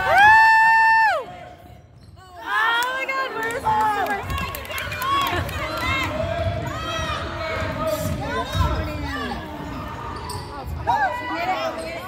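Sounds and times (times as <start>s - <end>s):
sneaker squeaks: 1.8s - 2.5s, 6.7s - 12.0s.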